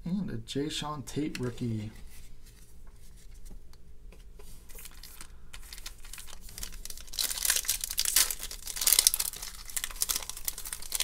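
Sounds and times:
foil wrapper crinkling: 0:04.7 - 0:11.0.

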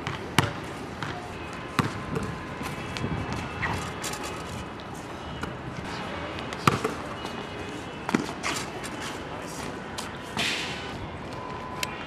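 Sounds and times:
basketball bouncing on court: 0:00.0 - 0:03.9, 0:06.6 - 0:07.1.

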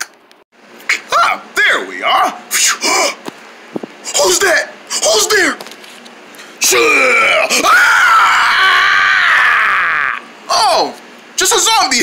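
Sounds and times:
person screaming: 0:06.6 - 0:10.2.

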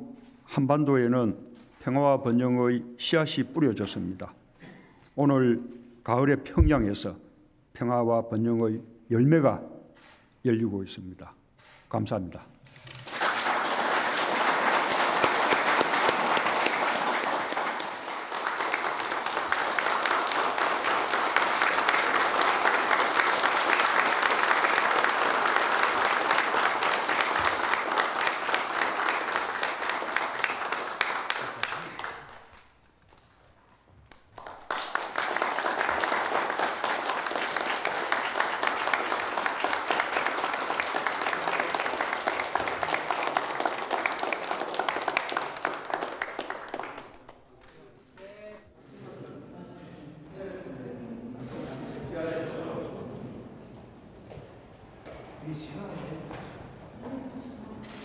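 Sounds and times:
people applauding: 0:12.7 - 0:48.3.

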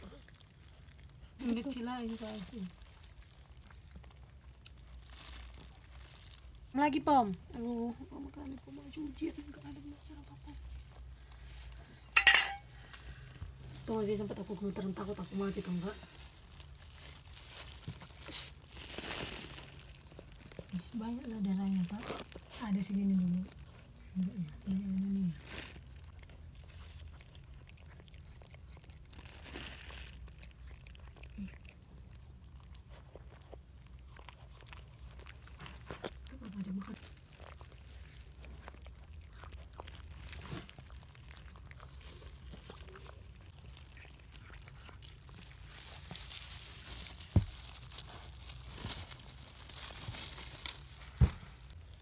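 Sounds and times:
dog chewing and licking: 0:00.0 - 0:06.7, 0:13.1 - 0:49.5.

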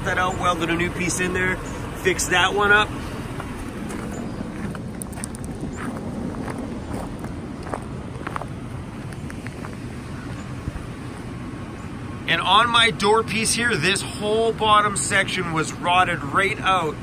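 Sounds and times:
steady low rumble: 0:00.0 - 0:17.0
footsteps on gravel: 0:03.0 - 0:11.4.

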